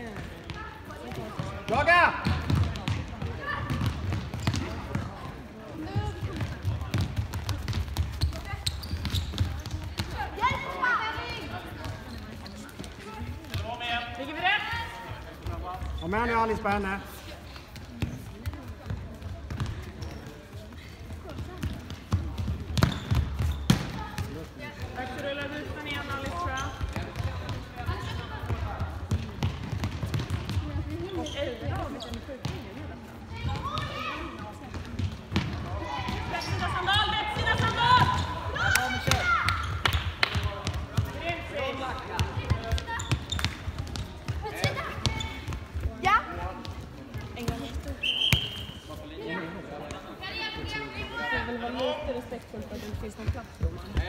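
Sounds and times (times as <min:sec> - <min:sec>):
ball kicked and bouncing: 0:00.0 - 0:10.6, 0:17.8 - 0:20.5, 0:21.2 - 0:25.6, 0:26.3 - 0:32.7, 0:34.7 - 0:36.7, 0:42.0 - 0:48.5.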